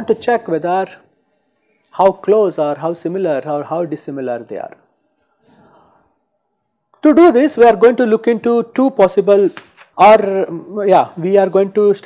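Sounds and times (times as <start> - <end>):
faint breath at microphone: 5.2 - 6.2.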